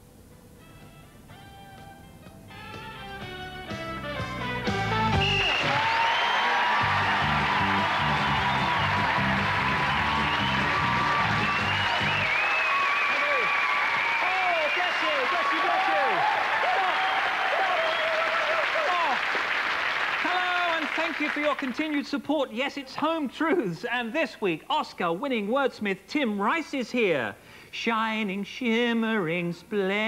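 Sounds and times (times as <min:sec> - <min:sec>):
theme tune music: 0:02.6 - 0:05.8
audience applauding and cheering: 0:04.6 - 0:21.9.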